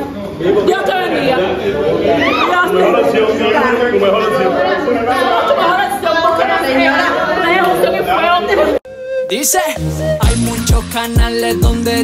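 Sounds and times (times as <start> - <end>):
loud group chatter: 0.0 - 8.8.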